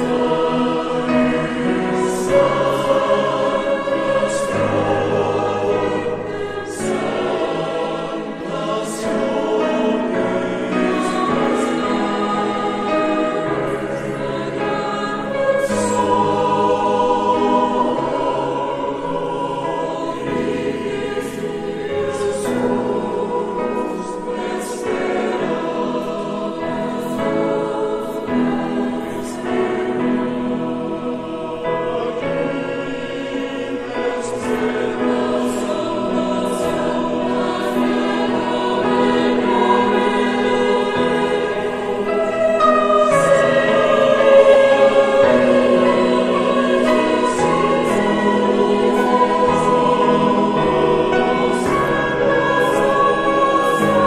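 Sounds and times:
choir singing a hymn: 0:00.0 - 0:54.0.

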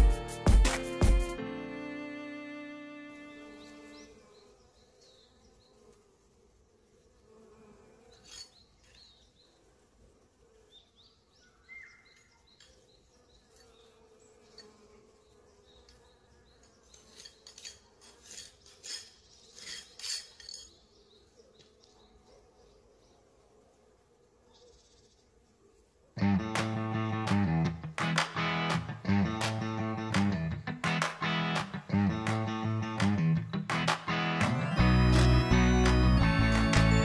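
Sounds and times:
honeybees buzzing: 0:00.0 - 0:11.4, 0:12.7 - 0:20.2, 0:25.2 - 0:37.0
rustles: 0:04.9 - 0:10.6, 0:12.0 - 0:22.0.

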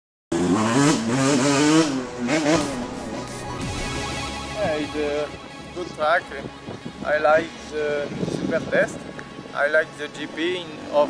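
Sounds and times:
motorcycle engine revving: 0:00.3 - 0:04.0
jingle music: 0:02.0 - 0:10.4.

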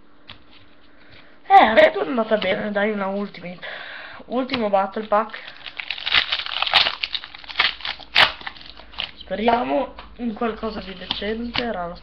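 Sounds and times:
foil wrapper crinkling: 0:04.8 - 0:09.4
foil wrapper ripping: 0:04.9 - 0:09.3.

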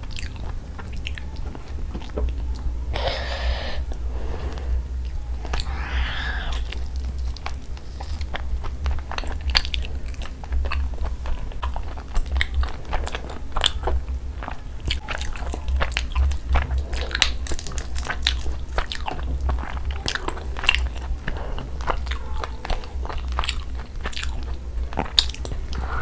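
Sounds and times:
steady low hum: 0:00.0 - 0:26.0
close biting and chewing: 0:05.0 - 0:26.0.

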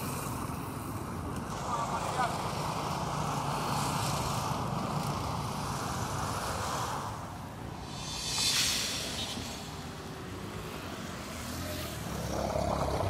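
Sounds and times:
city traffic hum: 0:00.0 - 0:13.0.

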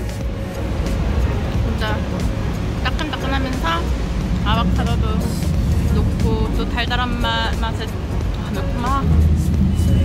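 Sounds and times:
vehicle rumble: 0:00.0 - 0:10.0.

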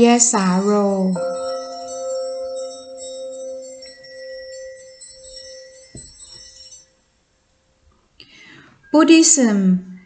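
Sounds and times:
chime-like bell tones ringing: 0:00.0 - 0:07.1
soft knock: 0:05.9 - 0:06.2.

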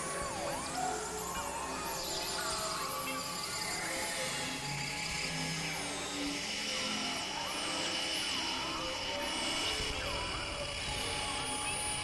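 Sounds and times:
held tones and drones: 0:00.0 - 0:12.0.

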